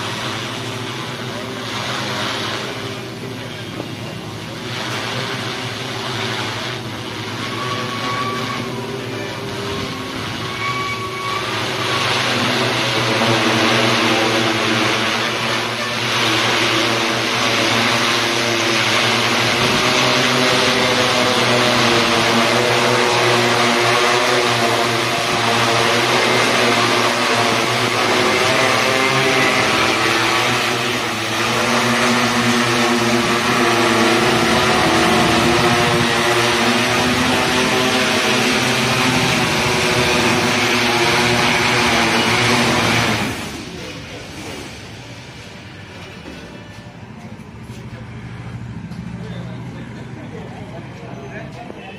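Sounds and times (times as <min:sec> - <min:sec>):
drone motors buzzing: 0:00.0 - 0:50.5.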